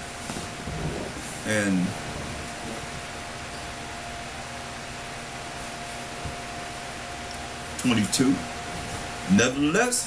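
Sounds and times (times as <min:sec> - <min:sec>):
faint hum tone: 0:00.0 - 0:10.0.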